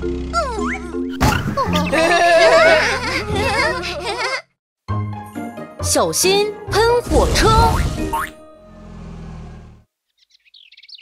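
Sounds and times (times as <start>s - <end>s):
truck engine rumble: 0.0s - 4.4s, 6.8s - 9.9s
bird twittering: 10.1s - 11.0s.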